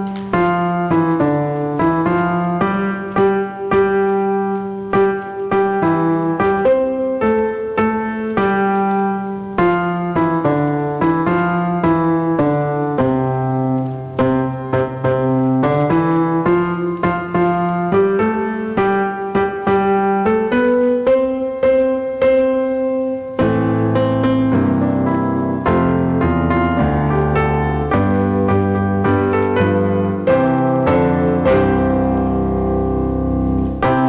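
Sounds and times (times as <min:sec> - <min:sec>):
church keyboard playing melody: 0:00.0 - 0:34.0.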